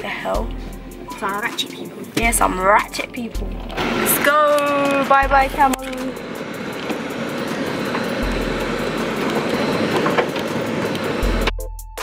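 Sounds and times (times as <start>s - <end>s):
road noise inside moving car: 0.0s - 11.5s.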